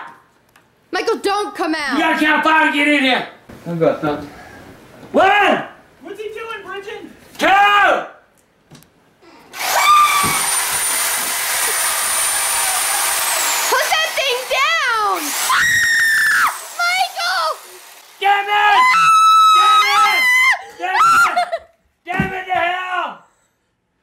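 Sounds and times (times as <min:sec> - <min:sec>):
reciprocating saw whining: 0:09.5 - 0:20.6
people screaming and shouting: 0:09.6 - 0:10.7, 0:14.9 - 0:21.5.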